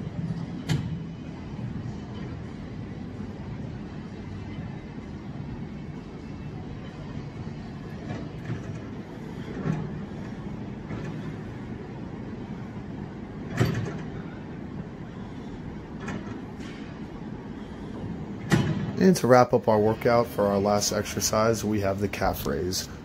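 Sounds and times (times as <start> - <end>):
low gym hum: 0.0 - 23.0
gym equipment knocks and clanks: 13.4 - 14.2, 18.4 - 19.0.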